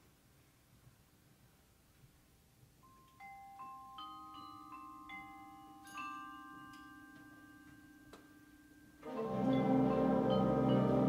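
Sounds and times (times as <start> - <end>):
bell-like mallet notes: 2.8 - 11.0.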